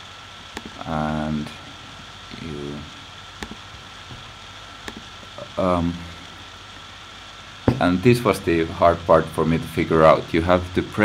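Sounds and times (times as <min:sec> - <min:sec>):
room and microphone hiss: 0:00.0 - 0:11.0
computer mouse clicks: 0:00.5 - 0:00.8, 0:03.4 - 0:03.6, 0:04.8 - 0:05.1.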